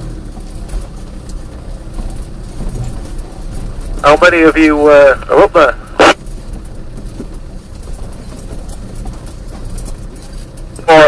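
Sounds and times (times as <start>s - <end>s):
off-road vehicle engine rumbling: 0.0s - 11.0s.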